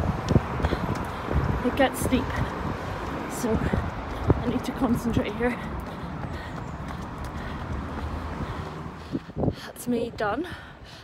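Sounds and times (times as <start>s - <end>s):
running footsteps on paving: 0.0s - 11.0s.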